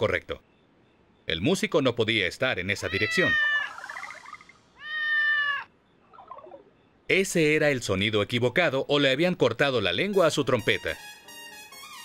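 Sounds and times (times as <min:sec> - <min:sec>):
cat meowing: 0:02.8 - 0:03.8, 0:04.8 - 0:05.7.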